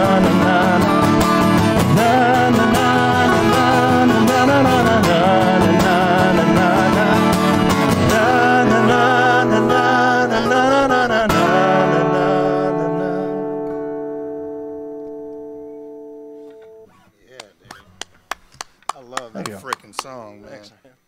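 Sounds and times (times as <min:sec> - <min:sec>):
acoustic and electric guitar chord: 0:00.0 - 0:16.9
hand claps: 0:17.3 - 0:20.2
voices: 0:18.9 - 0:21.0.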